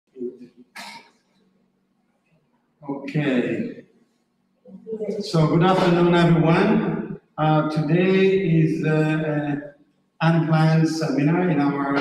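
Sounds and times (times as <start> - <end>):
man clearing throat: 0.8 - 1.0, 5.4 - 6.7
brief cough: 0.8 - 1.1.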